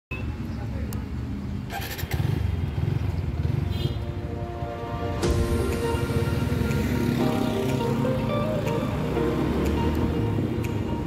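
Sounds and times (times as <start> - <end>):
motorcycle engine rumbling: 1.4 - 11.0.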